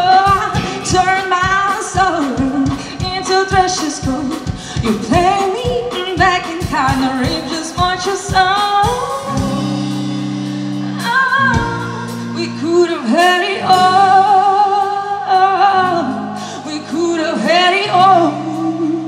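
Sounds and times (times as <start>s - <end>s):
drum beat: 0.0s - 9.7s
electric guitar: 0.0s - 19.0s
woman singing: 0.0s - 19.0s
bass guitar: 6.6s - 19.0s.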